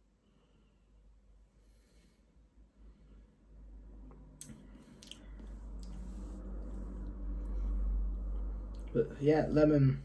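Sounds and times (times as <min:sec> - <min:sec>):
lips and tongue smacking: 0:04.4 - 0:06.8.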